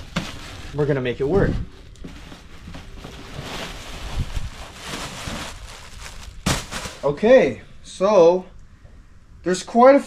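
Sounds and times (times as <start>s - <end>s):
foil wrap rustling and crinkling: 0.0s - 7.3s.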